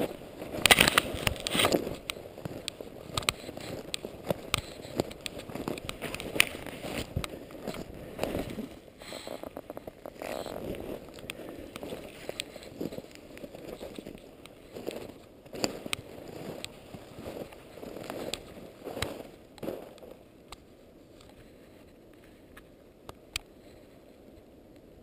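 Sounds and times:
footsteps crunching in snow: 0.0 - 20.2
sharp clicks: 0.6 - 6.6.

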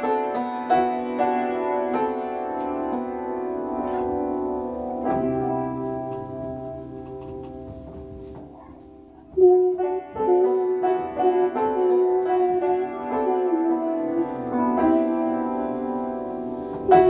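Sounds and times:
upright piano playing: 0.0 - 17.0.

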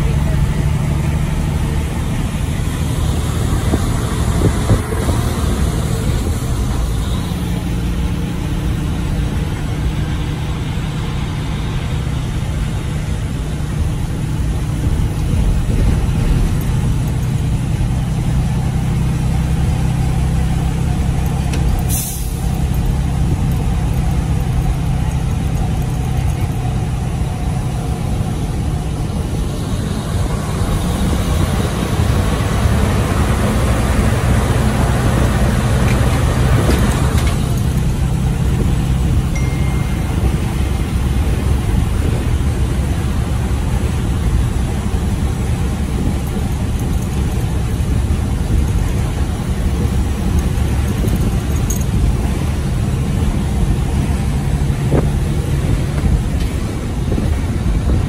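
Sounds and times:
road noise: 0.0 - 58.0
truck diesel engine under load: 0.0 - 58.0.

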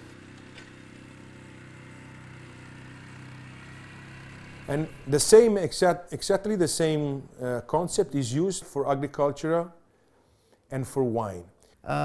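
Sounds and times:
quad bike engine running: 0.0 - 5.8.

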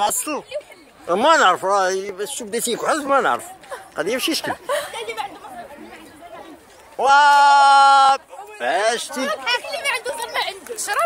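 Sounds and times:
children's voices: 3.4 - 7.0, 8.2 - 11.0.

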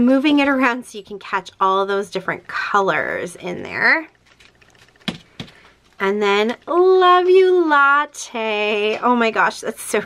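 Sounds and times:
plastic bag rustling: 4.1 - 6.5.

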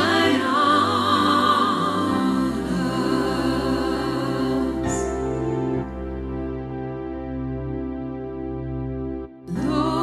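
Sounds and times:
person singing with vibrato: 0.0 - 5.3.

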